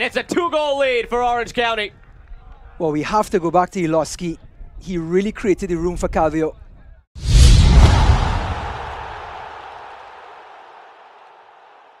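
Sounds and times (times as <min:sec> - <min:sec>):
deep hit: 0:07.2 - 0:09.5.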